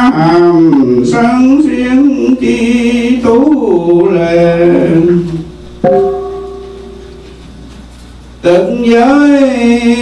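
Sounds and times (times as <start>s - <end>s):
ritual bell ringing: 5.8s - 7.3s.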